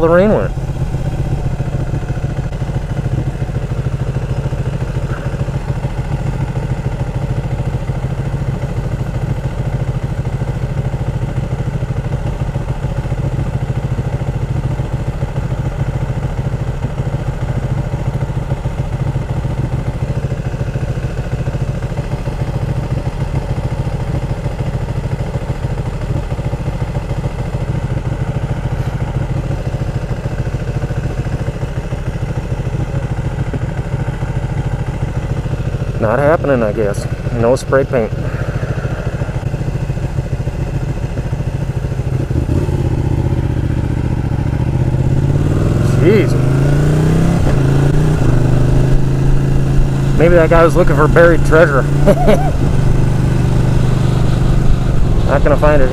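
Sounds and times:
motorcycle engine idling: 0:00.0 - 0:55.9.

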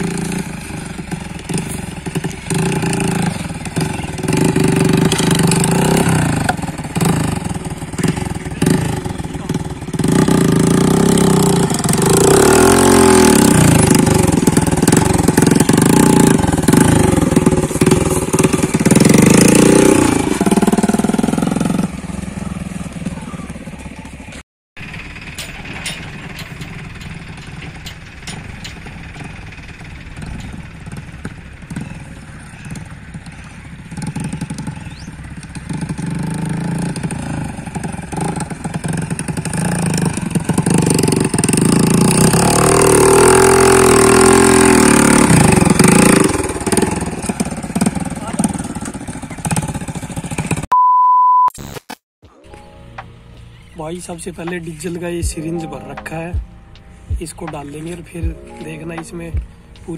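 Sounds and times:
motorcycle engine revving: 0:00.0 - 0:50.7.

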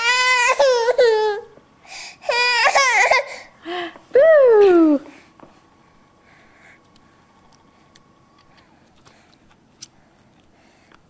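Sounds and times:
baby girl crying: 0:00.0 - 0:01.5, 0:02.2 - 0:03.5.

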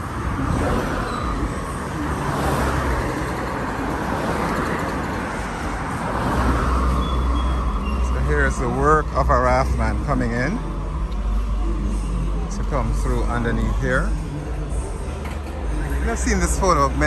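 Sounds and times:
cars driving past: 0:00.0 - 0:17.0
deep engine rumble: 0:00.0 - 0:17.0.

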